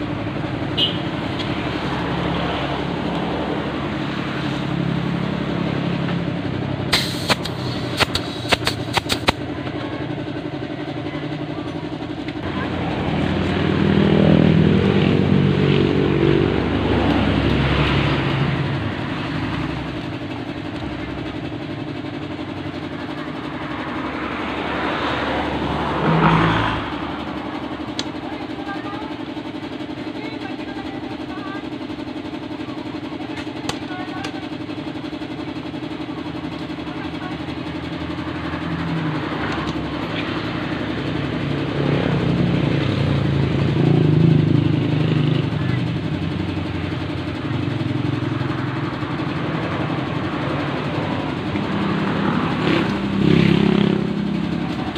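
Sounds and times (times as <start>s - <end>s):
road vehicles passing: 0.0s - 54.9s.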